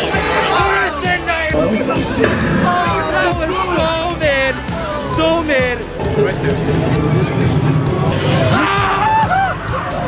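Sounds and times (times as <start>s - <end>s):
voices: 0.3s - 8.0s
low rumbling music and effects: 1.4s - 4.6s
people laughing: 1.5s - 3.8s.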